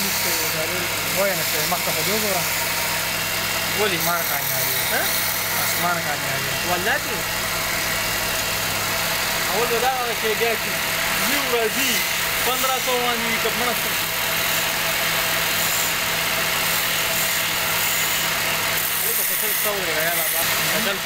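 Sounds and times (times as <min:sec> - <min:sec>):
chisel cutting spinning wood: 0:00.0 - 0:21.0
wood lathe humming: 0:00.0 - 0:21.0.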